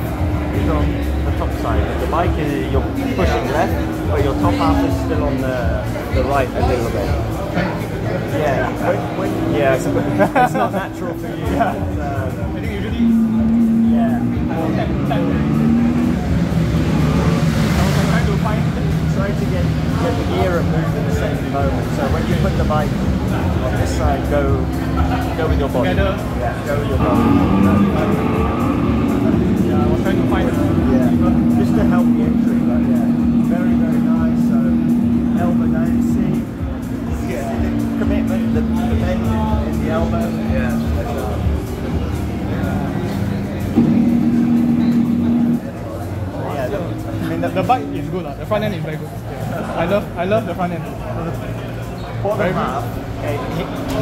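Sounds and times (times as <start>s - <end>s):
faint voices: 0.0s - 54.0s
motorcycle engine running: 18.1s - 48.0s.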